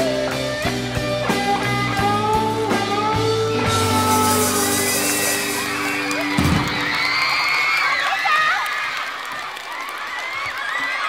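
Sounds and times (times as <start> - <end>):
rock band final chord: 0.1 - 6.9
audience cheering and screaming: 3.7 - 11.0
applause: 5.2 - 11.0.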